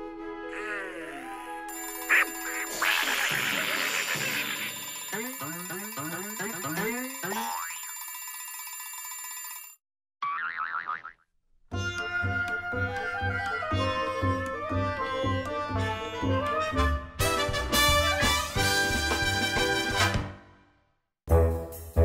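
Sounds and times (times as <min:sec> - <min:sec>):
cartoon music: 0:00.5 - 0:07.9.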